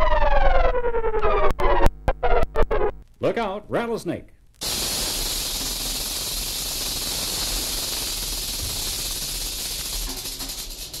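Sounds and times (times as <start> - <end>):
rattlesnake rattle buzzing: 4.6 - 11.0.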